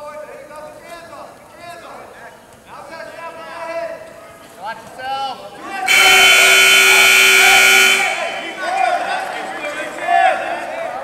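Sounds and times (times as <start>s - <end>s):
scoreboard buzzer: 5.9s - 8.6s.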